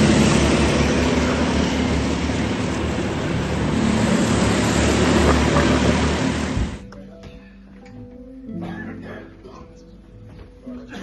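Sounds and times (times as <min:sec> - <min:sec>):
broad rushing noise: 0:00.0 - 0:06.8
kart engines droning: 0:00.0 - 0:06.8.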